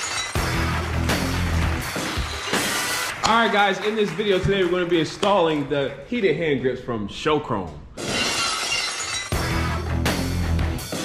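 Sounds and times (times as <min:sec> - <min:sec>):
glass shattering: 0:00.0 - 0:00.5, 0:08.0 - 0:09.7
music with heavy bass: 0:09.4 - 0:11.0.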